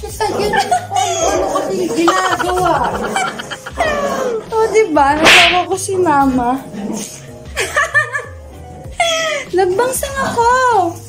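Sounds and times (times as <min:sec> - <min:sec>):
sharp hissing burst: 0:05.2 - 0:05.7.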